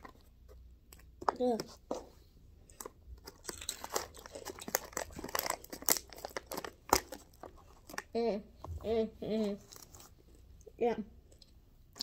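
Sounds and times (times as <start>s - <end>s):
candy crunching while chewed: 2.7s - 8.2s, 9.5s - 10.4s
foil pouch crinkling: 3.3s - 8.1s.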